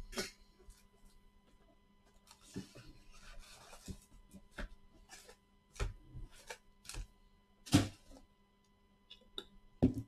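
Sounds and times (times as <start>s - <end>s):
card packs rustling: 2.1s - 7.1s.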